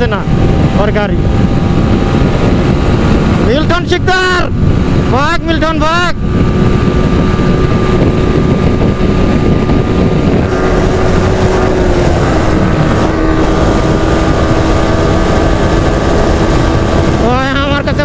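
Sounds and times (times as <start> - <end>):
motorcycle engine droning: 0.0 - 18.0
wind noise on microphone: 0.0 - 18.0.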